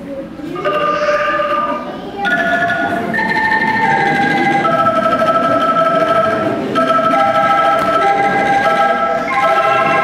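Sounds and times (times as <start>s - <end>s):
angklung ensemble playing chords: 0.6s - 10.0s.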